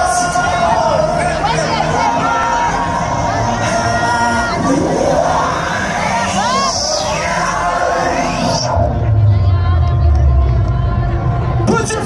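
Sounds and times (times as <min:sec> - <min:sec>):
electronic dance music: 0:00.0 - 0:09.8
crowd cheering and whooping: 0:00.0 - 0:11.8
heavy bass drop: 0:00.0 - 0:12.0.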